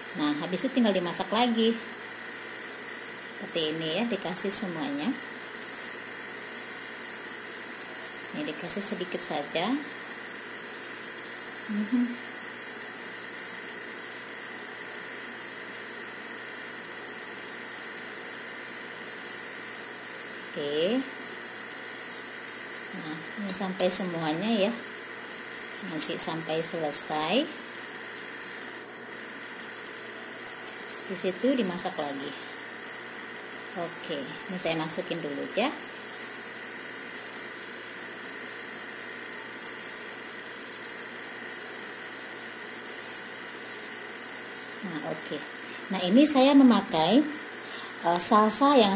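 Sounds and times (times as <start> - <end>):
thin high hum: 0.0 - 48.9.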